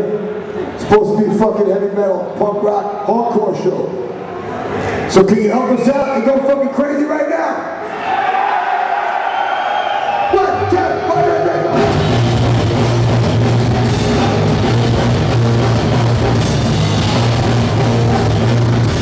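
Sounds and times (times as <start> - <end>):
hardcore band playing live: 10.5 - 19.0.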